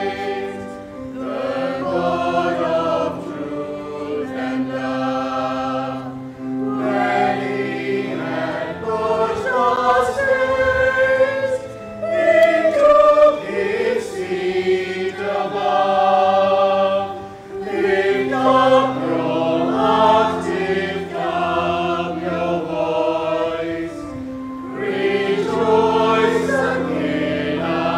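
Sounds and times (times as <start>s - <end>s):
congregation singing a hymn: 0.0s - 27.9s
sustained low accompanying notes: 0.0s - 27.9s.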